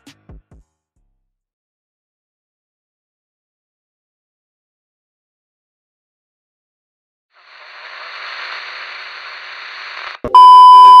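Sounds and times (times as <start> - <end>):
tv static hiss: 7.4 - 11.0
steady test-tone beep: 10.3 - 11.0.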